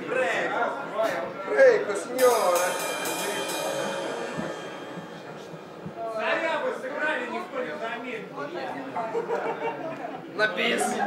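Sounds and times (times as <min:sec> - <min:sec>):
band instruments struck and ringing: 0:02.2 - 0:07.8.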